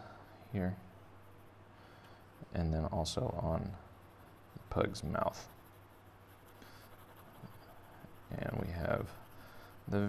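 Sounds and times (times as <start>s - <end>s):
pen scratching on paper: 3.8s - 10.0s.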